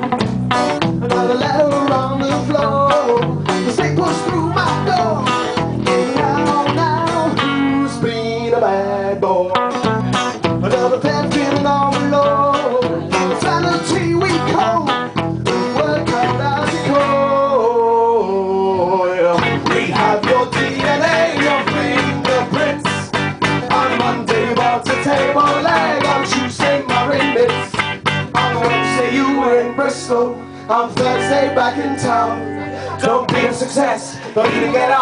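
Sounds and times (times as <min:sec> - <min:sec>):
rock band playing live: 0:00.0 - 0:08.4, 0:09.5 - 0:17.5, 0:19.3 - 0:35.0
electric guitar: 0:00.0 - 0:35.0.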